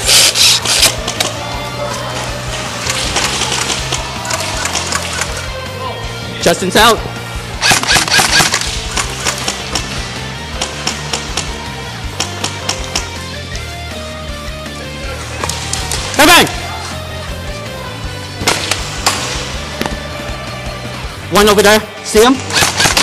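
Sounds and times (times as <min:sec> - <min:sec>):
background music: 0:00.0 - 0:23.0
airsoft rifle shots: 0:07.6 - 0:09.9, 0:22.4 - 0:23.0.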